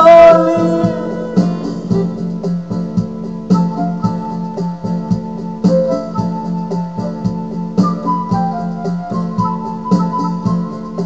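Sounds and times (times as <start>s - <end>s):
man singing: 0.0s - 2.2s
backing music with steady beat: 0.0s - 11.0s.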